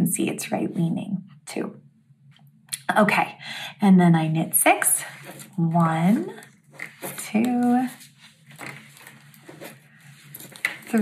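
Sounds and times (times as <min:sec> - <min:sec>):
yarn and knitting needles rustling: 0:04.9 - 0:11.0.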